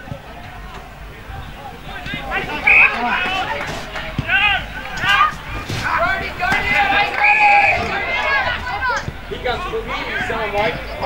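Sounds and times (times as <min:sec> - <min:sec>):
voices shouting and calling out: 0:00.0 - 0:11.0.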